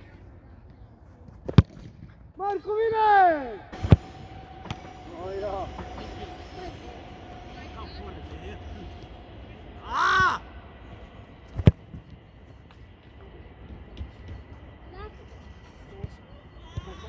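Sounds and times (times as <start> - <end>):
loud rising and falling call: 3.4 - 11.4.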